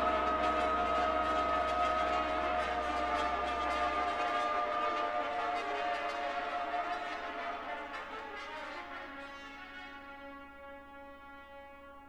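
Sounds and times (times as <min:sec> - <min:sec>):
low drone: 0:00.0 - 0:07.9
chamber ensemble held notes: 0:00.0 - 0:08.5.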